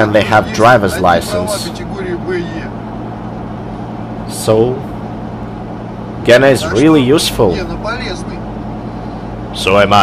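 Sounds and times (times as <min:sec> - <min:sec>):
man's voice: 0:00.0 - 0:02.8, 0:06.3 - 0:08.4
car engine drone and road noise: 0:00.0 - 0:10.0.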